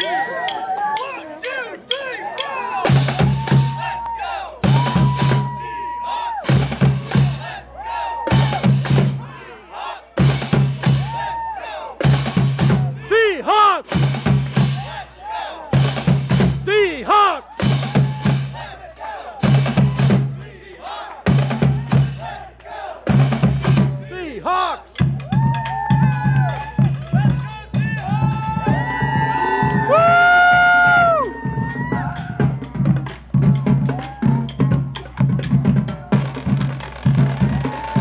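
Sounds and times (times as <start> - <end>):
marching drumline: 0.0 - 38.0.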